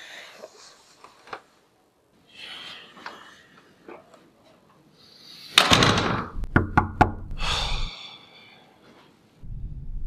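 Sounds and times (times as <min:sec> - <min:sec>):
knocking on wooden door: 0:06.5 - 0:07.2.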